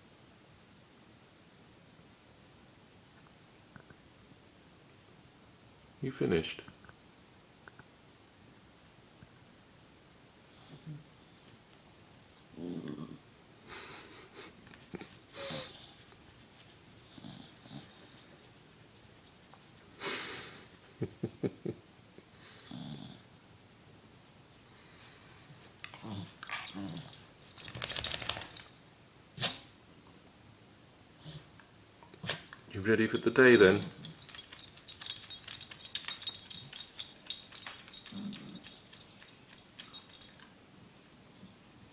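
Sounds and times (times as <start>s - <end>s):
dog low vocal sound: 12.5s - 13.2s, 25.9s - 27.1s
dog breathing and sniffing: 14.4s - 20.1s, 25.9s - 28.7s, 33.1s - 40.4s
collar tags jingling: 15.0s - 16.1s, 25.9s - 28.8s, 32.8s - 40.5s.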